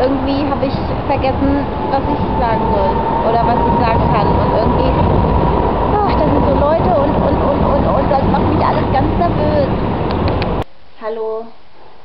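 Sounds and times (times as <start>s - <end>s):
people chattering: 0.0s - 5.2s, 5.9s - 10.5s
low street rumble: 0.0s - 10.7s.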